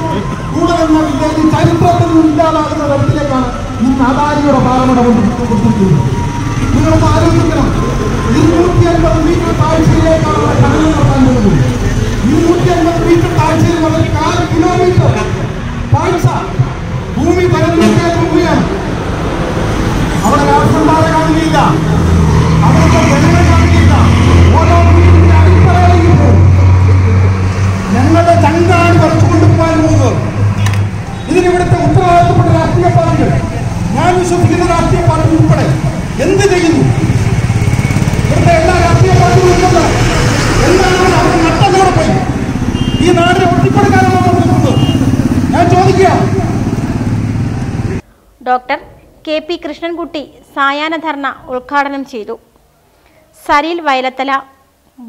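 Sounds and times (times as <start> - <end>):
man speaking through loudspeaker: 0.0 - 19.0, 20.1 - 37.4, 38.0 - 46.7
man talking through a microphone: 0.0 - 19.0, 20.2 - 37.2, 38.1 - 46.7
bus engine droning: 0.0 - 48.0.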